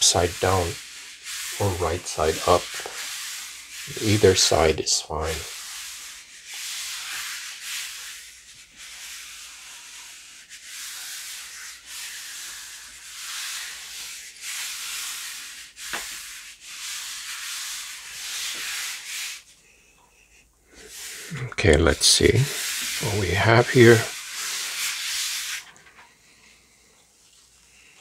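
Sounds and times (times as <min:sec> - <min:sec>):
palms rubbing paper: 0:00.0 - 0:26.4.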